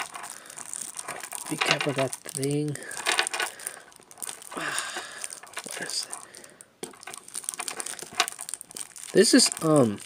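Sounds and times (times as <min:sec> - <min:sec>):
cards ticking when handled: 0:00.0 - 0:10.0
plastic wrapping crinkling: 0:00.0 - 0:10.0.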